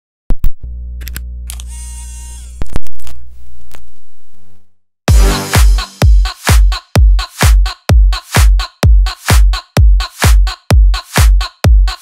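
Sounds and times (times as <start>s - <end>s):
turntable motor hum: 0.5s - 4.8s.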